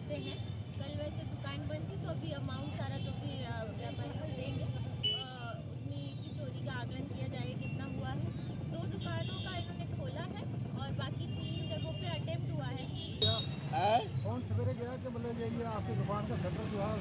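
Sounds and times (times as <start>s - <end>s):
woman speaking: 0.0s - 13.0s
street traffic rumble: 0.0s - 17.0s.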